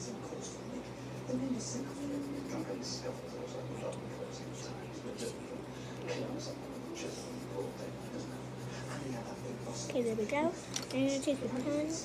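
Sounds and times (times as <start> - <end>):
low steady hum: 0.0 - 12.0
pencil scratching on paper: 0.8 - 10.4.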